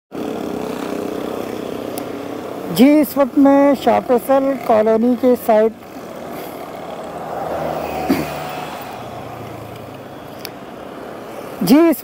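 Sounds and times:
road traffic engine hum: 0.1s - 12.0s.

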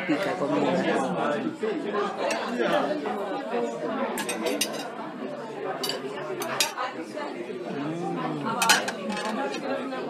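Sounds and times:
people chatting: 0.0s - 10.0s
metal utensils clinking on pans: 4.2s - 4.9s, 5.8s - 6.8s, 8.6s - 9.6s.

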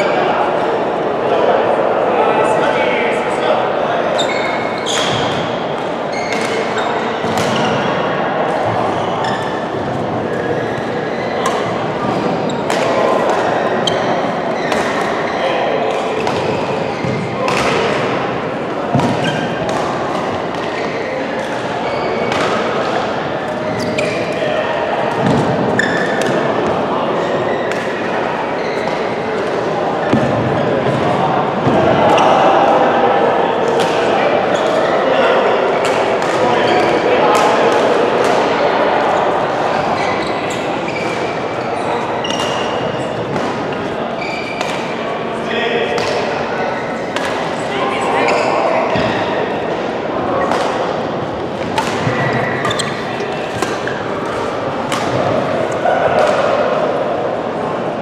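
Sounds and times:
murmur of voices in a hall: 0.0s - 58.0s.

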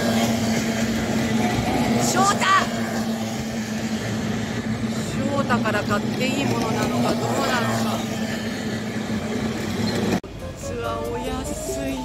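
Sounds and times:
outboard engines droning: 0.0s - 12.0s.

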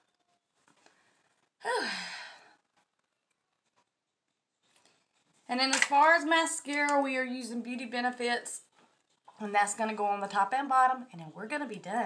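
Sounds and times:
woman sighing: 1.6s - 2.6s.

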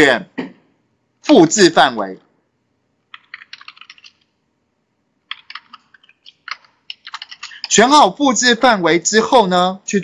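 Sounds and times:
typing on computer keyboard: 3.1s - 4.3s, 5.3s - 7.8s.

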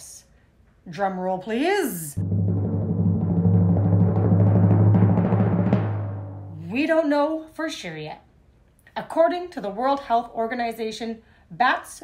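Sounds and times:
drum roll: 2.2s - 6.8s.

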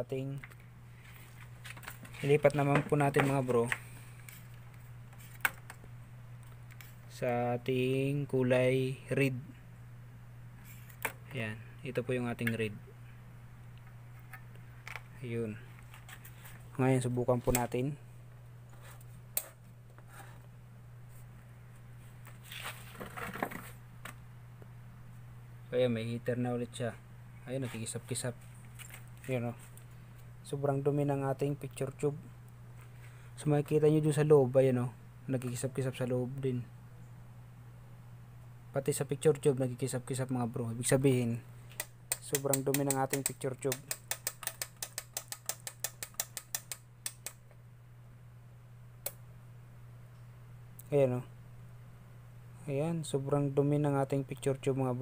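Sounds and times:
television electrical hum: 0.0s - 55.0s
crackles and handling clicks: 1.4s - 5.8s, 13.7s - 17.9s, 41.7s - 47.6s
sharp click: 41.8s - 47.5s.

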